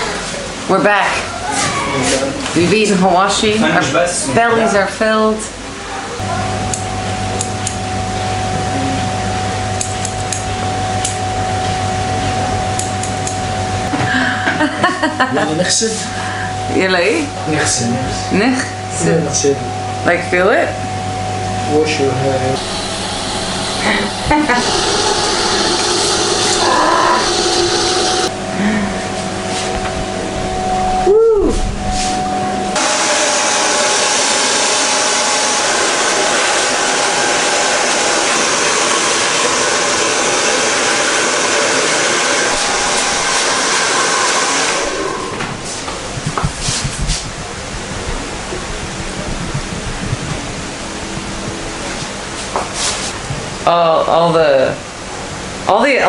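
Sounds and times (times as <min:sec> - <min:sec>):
hair dryer blowing: 0:22.6 - 0:29.9, 0:32.7 - 0:47.4.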